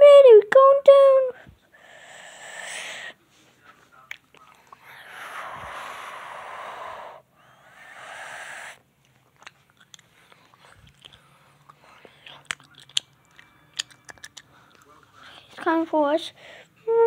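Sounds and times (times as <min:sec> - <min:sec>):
whispered whooshing from mouth: 0:03.9 - 0:07.2.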